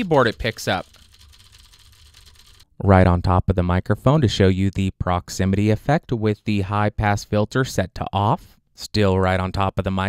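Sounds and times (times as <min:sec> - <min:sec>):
person speaking into microphone: 0:00.0 - 0:00.9, 0:02.8 - 0:10.0
mechanical keyboard typing: 0:00.0 - 0:02.7.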